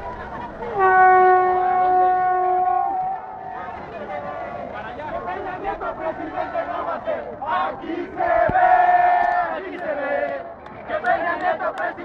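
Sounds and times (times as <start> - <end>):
protesters shouting: 0.0 - 12.0.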